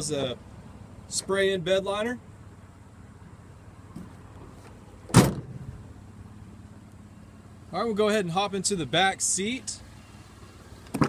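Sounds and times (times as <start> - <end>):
tailgate slamming shut: 5.1 - 5.7.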